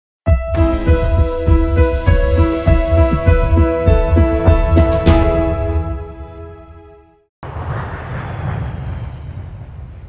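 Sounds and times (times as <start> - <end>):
rushing noise with deep rumble: 7.4 - 10.0.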